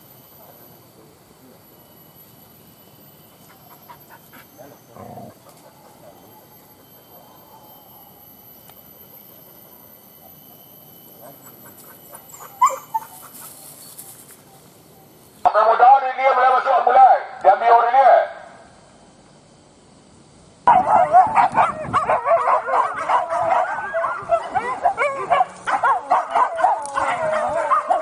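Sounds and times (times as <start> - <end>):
dogs whimpering and yipping: 3.4 - 8.2, 11.2 - 14.6, 20.7 - 28.0.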